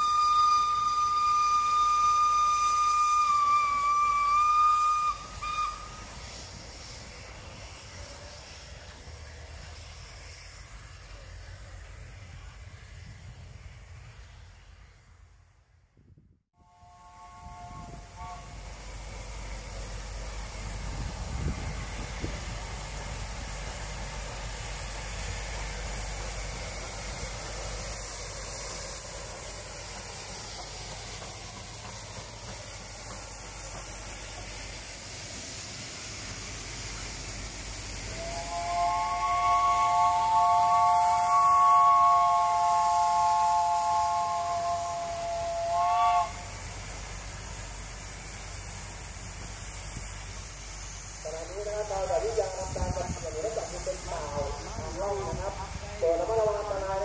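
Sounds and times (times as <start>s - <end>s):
steam locomotive whistle: 0.0s - 6.9s, 16.6s - 18.8s, 37.9s - 46.6s
steam hissing: 0.0s - 15.4s, 16.6s - 57.0s.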